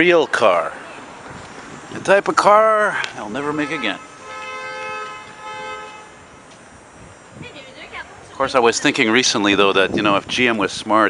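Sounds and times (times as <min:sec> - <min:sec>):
vehicle horn two-tone note: 0:03.4 - 0:06.2.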